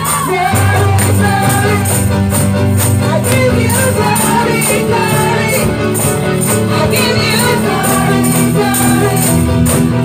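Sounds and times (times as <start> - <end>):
tambourines jingling: 0.0 - 10.0
voices singing gospel music: 0.0 - 10.0.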